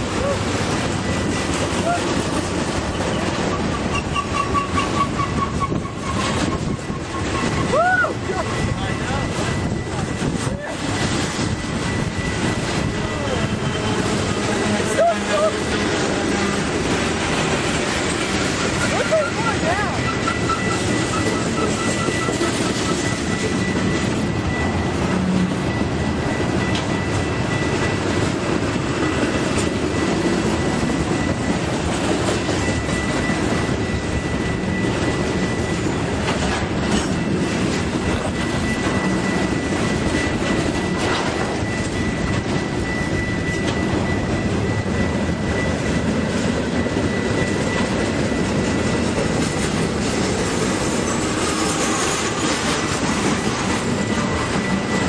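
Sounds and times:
clickety-clack of rail joints: 0.0 - 55.0
train wheels rumbling on rail: 0.0 - 55.0.

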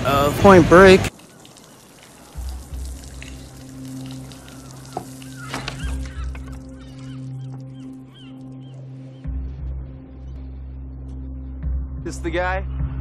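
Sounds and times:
water spraying from shower: 0.1 - 7.3.

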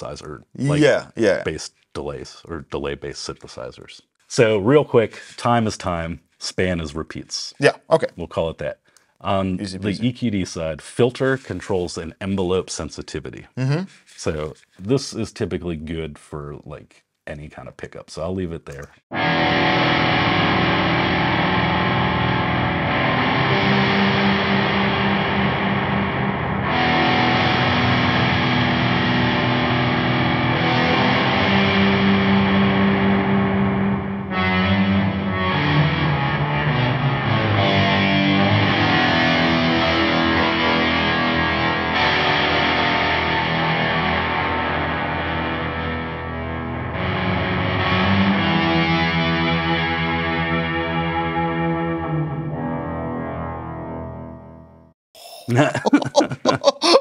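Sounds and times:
distorted electric guitar chords with delay: 19.1 - 54.5.

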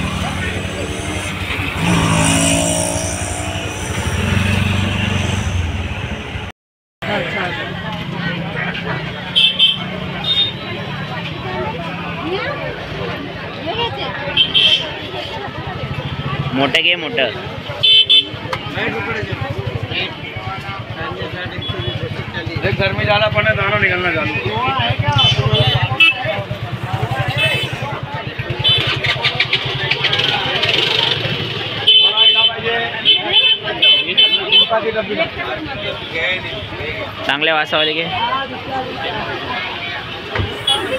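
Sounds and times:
street traffic noise: 0.0 - 40.9
voices talking: 7.1 - 40.9
vehicle horn toots: 40.5 - 40.9.

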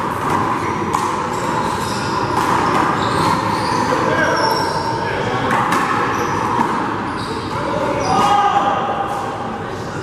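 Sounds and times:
sneaker squeaks on court floor: 0.5 - 8.6.

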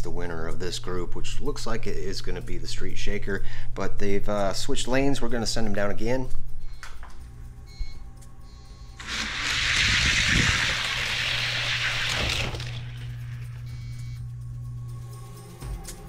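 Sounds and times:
toy cars rolling on plastic track: 9.0 - 13.5
background music: 13.2 - 16.0.

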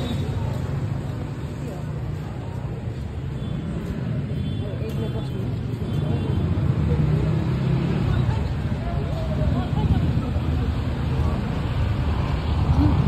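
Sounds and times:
motor traffic: 0.0 - 13.0.

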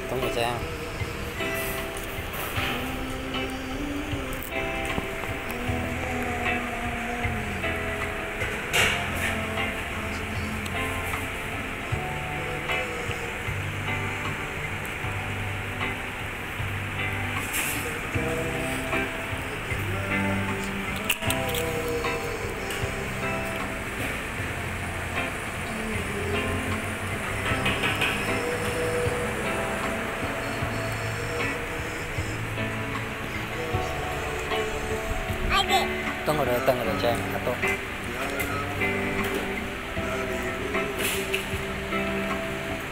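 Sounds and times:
repeating bass line: 0.0 - 38.0
electronic keyboard melody: 0.0 - 42.9.

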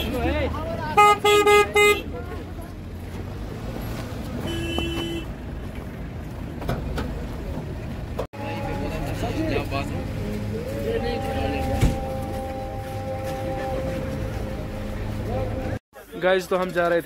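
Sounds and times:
vehicle engines idling: 0.0 - 17.0
car horn toot: 0.9 - 2.1, 4.4 - 5.3
people's voices: 6.8 - 17.0.

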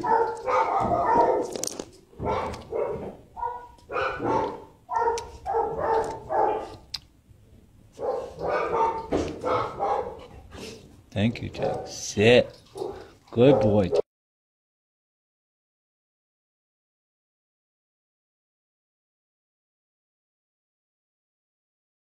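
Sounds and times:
dog barking: 0.0 - 1.6, 2.2 - 6.8, 8.0 - 10.3, 11.6 - 14.0.

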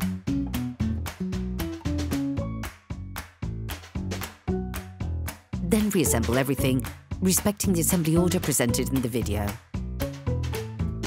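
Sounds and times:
background music with beat: 0.0 - 11.0.

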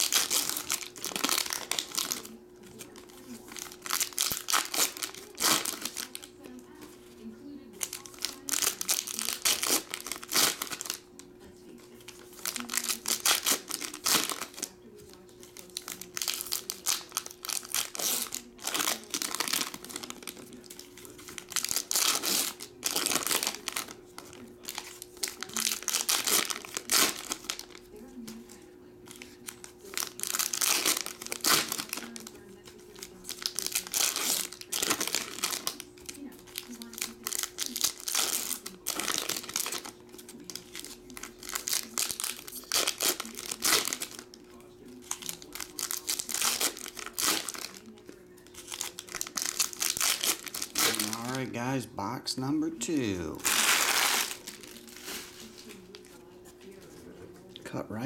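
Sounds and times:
foil wrappers crinkling: 0.0 - 51.9, 52.8 - 56.9.

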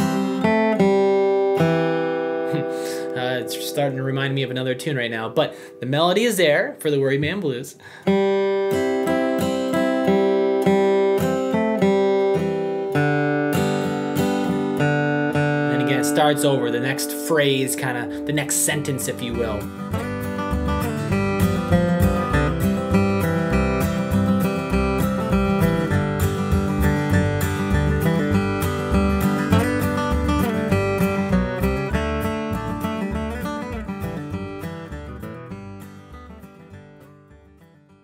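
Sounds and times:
acoustic guitar strumming: 0.0 - 38.0.

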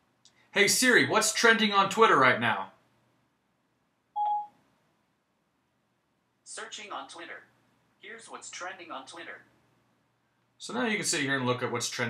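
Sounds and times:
short electronic beep: 4.2 - 4.5.

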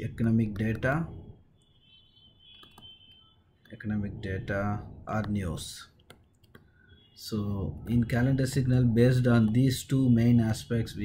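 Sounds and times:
computer clicks: 2.5 - 3.8, 5.2 - 6.7.

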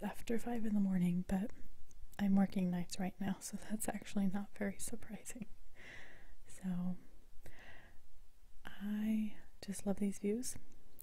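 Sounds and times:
woman talking softly: 2.2 - 5.5.

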